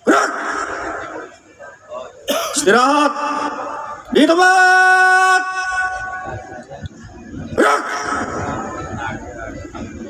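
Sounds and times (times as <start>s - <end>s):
loud shouted call: 0.0s - 1.3s, 2.5s - 6.5s, 7.5s - 9.0s
crowd murmur: 0.0s - 10.0s.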